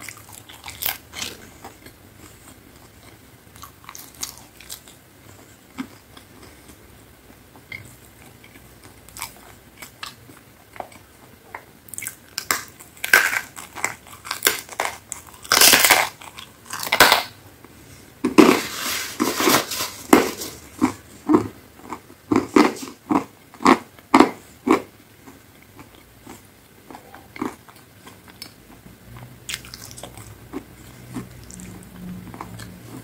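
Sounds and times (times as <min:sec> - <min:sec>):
crunching pizza crust: 0:12.0 - 0:17.3, 0:18.2 - 0:28.6.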